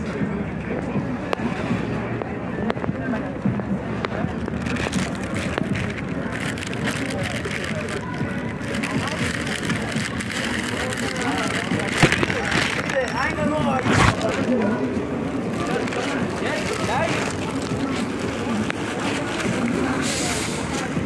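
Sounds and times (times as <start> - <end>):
city street noise: 0.0 - 21.0
people talking indistinctly: 0.0 - 21.0.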